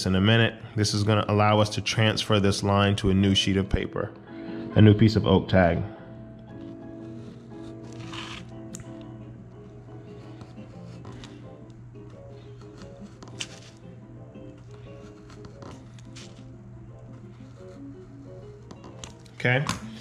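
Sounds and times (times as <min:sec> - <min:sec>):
background music: 0:00.0 - 0:20.0
craft knife cutting card: 0:06.6 - 0:09.0, 0:10.1 - 0:13.8, 0:14.6 - 0:19.4.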